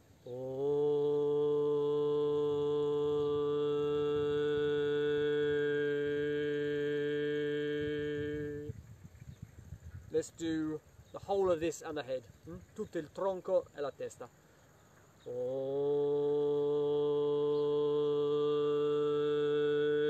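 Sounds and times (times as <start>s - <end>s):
man chanting a steady tone: 0.0s - 8.8s, 10.1s - 14.6s, 15.2s - 20.0s.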